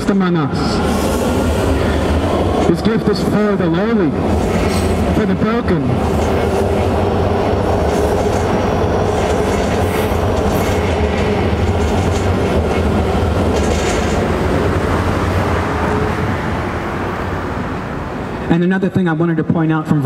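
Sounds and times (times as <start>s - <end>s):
train wheels rumbling on rail: 0.0s - 18.5s.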